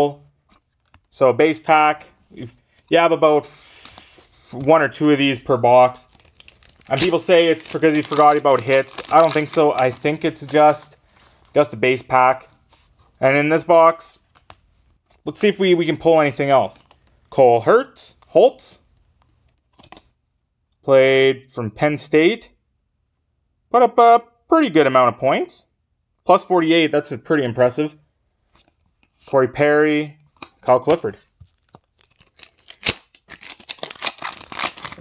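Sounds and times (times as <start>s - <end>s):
man speaking: 0.0s - 0.2s, 1.2s - 6.1s, 6.9s - 10.9s, 13.2s - 14.2s, 23.7s - 25.7s, 26.3s - 28.0s
foil wrapper crinkling and tearing: 5.9s - 11.7s, 31.5s - 35.0s
trading card rustle: 6.0s - 13.0s, 30.3s - 35.0s
foil wrapper cracking: 6.1s - 10.8s, 31.5s - 35.0s.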